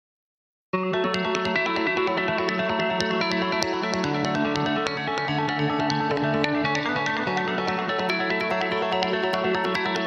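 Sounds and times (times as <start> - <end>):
rock guitar music: 0.8 - 10.0.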